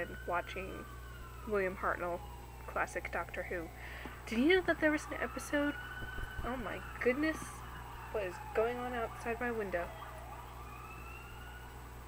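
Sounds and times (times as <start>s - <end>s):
emergency vehicle siren wailing: 0.0s - 12.0s.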